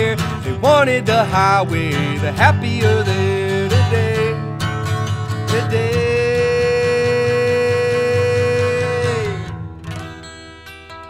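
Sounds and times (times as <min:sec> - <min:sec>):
strummed acoustic guitar: 0:00.0 - 0:11.0
man singing a long note: 0:05.5 - 0:09.5.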